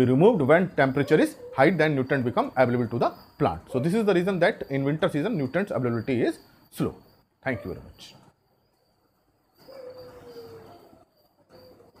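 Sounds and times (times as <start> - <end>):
bird calling: 0.0 - 12.0.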